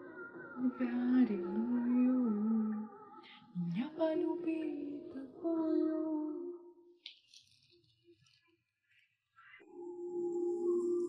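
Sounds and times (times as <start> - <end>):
woman singing long notes: 0.0 - 6.7.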